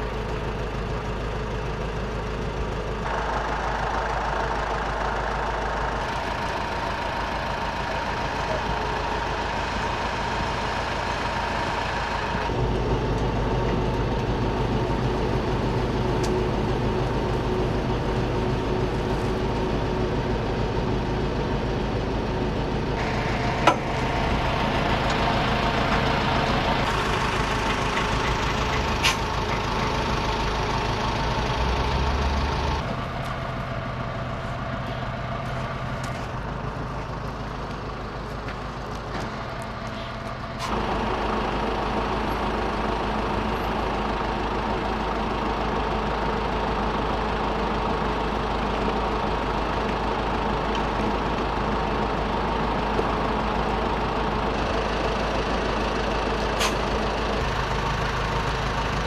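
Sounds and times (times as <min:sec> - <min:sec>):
truck engine running: 0:00.0 - 0:59.0.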